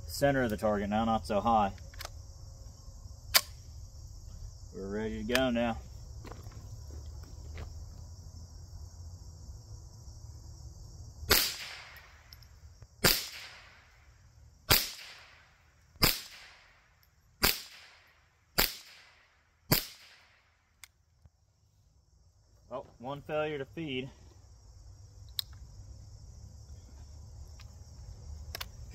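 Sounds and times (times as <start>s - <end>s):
rifle shots with echo: 11.3s - 12.0s, 13.0s - 13.8s, 14.7s - 15.4s, 16.0s - 16.6s, 17.4s - 18.0s, 18.6s - 20.4s
faint rifle click: 28.4s - 28.8s.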